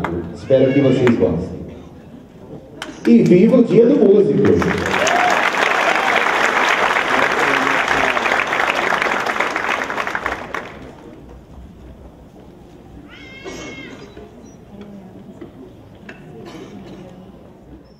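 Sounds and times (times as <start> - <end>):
audience applauding: 2.8 - 11.2.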